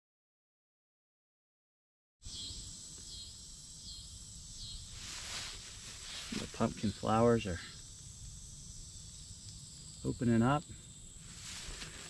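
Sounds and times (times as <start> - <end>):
insects droning: 2.2 - 12.0
short insect chirp: 2.2 - 12.0.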